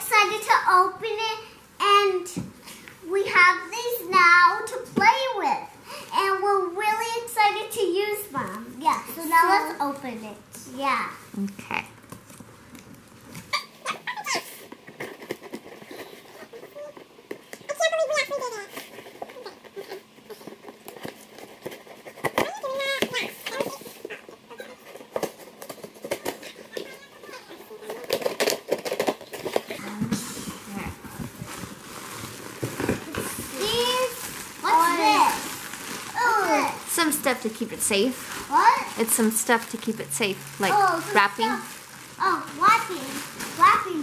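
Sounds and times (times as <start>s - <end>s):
plastic packing crinkling: 12.0s - 44.0s
cardboard box rustling: 30.5s - 38.8s
children's voices: 33.1s - 37.0s, 38.4s - 39.1s, 40.6s - 44.0s.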